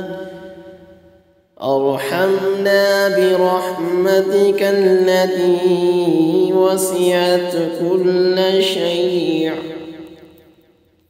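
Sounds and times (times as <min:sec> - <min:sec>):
person chanting: 0:00.0 - 0:01.0, 0:01.6 - 0:10.4.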